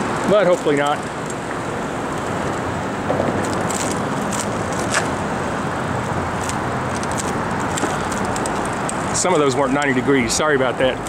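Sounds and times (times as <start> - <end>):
bicycle tyre and wind rush: 0.0 - 11.0.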